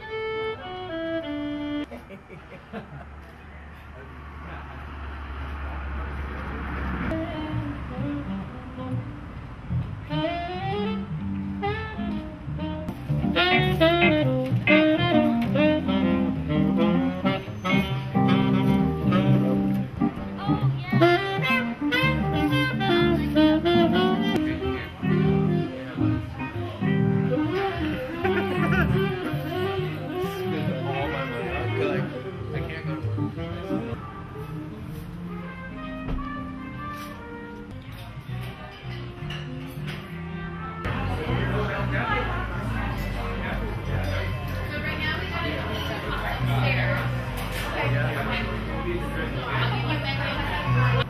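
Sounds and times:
saxophone: 0.0s - 1.9s, 6.9s - 41.5s
keyboard accompaniment: 0.0s - 2.0s, 7.1s - 51.0s
murmur of voices: 12.8s - 51.0s.

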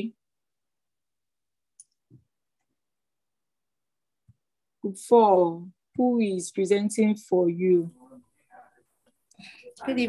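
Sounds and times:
person speaking: 9.4s - 10.0s.

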